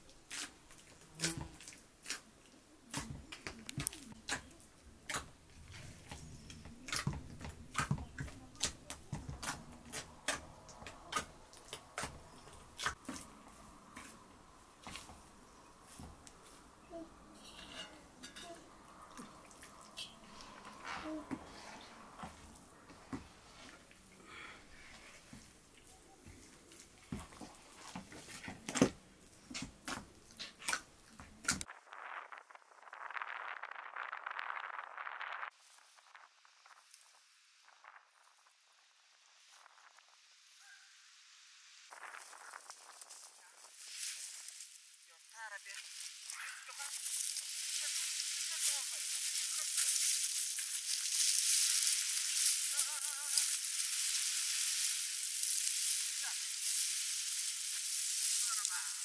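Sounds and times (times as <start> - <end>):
dry plants rustling and crackling: 0.0 - 40.7, 41.7 - 59.0.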